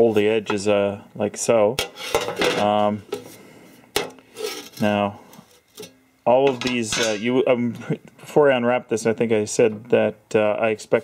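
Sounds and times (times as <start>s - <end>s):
sheet metal clinking and rattling: 6.5s - 7.4s.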